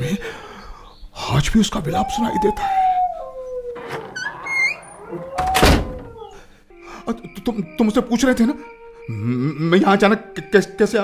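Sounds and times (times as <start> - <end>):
dog howling: 1.8 - 6.5.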